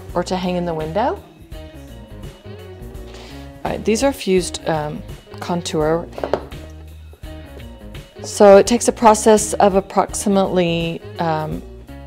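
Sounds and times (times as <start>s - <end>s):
guitar music: 0.0s - 10.4s
low bass line: 0.0s - 12.0s
glass pendants tapping on table: 6.2s - 6.6s.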